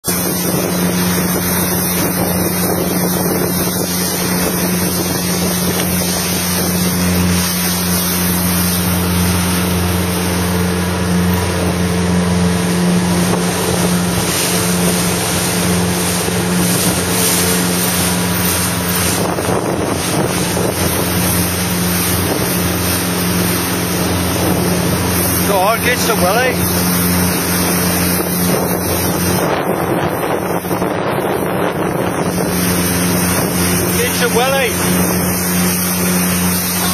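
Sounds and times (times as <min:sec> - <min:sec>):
motorboat engine running: 0:00.0 - 0:36.9
water noise: 0:00.0 - 0:36.9
wind on microphone: 0:00.0 - 0:36.9.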